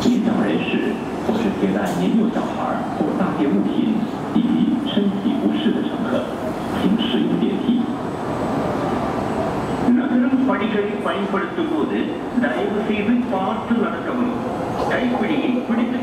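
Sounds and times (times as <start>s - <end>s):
people talking: 0.0s - 8.0s, 9.8s - 16.0s
train on elevated track: 0.0s - 16.0s.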